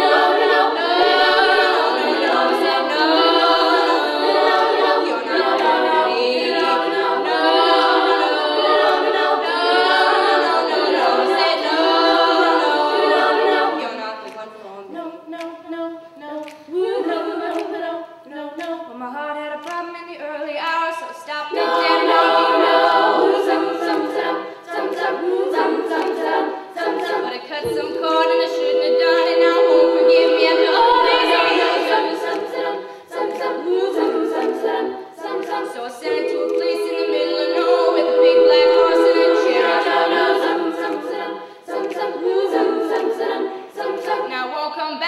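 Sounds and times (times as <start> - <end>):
female choir singing a cappella: 0.0 - 45.0.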